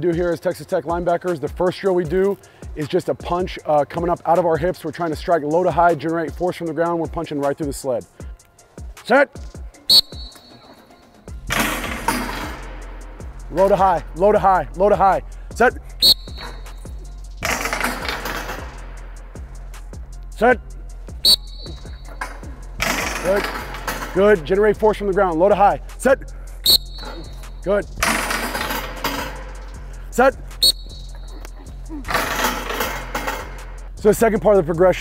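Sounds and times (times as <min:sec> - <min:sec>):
metal sled rattling across turf: 0:17.5 - 0:18.8, 0:21.7 - 0:25.1, 0:26.7 - 0:29.6, 0:32.1 - 0:33.7.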